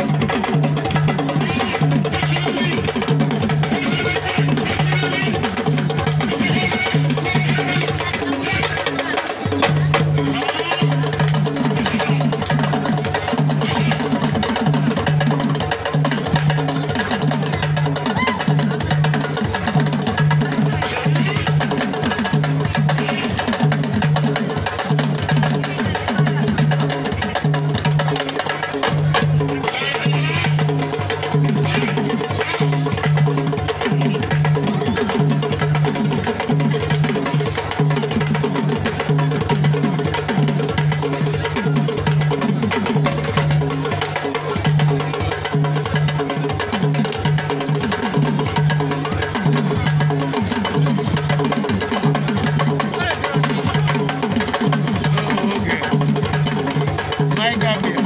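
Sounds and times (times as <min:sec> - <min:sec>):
crowd voices: 0:00.0 - 0:58.0.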